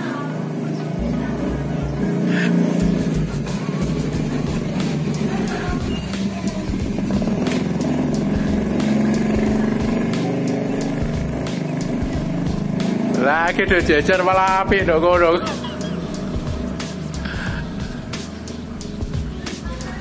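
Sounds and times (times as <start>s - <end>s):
engine running steadily: 0.0s - 20.0s
music playing: 0.0s - 20.0s.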